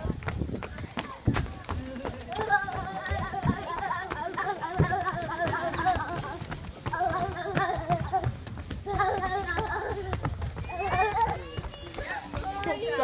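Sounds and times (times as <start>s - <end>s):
running footsteps on wooden boards: 0.0s - 13.0s.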